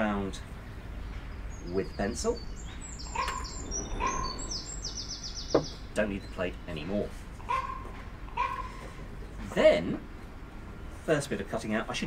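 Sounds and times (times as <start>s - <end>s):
small birds singing and chirping: 0.0s - 11.8s
short lower bird notes: 1.6s - 6.3s.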